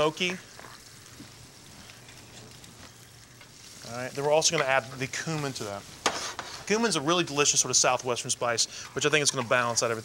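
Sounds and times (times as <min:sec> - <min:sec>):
sauce sizzling in a saucepan: 0:00.0 - 0:10.0.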